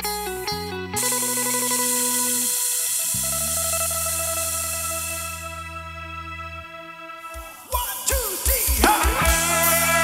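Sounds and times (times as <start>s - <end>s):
band playing live: 0.0s - 10.0s
loud hissing wash: 1.0s - 5.7s.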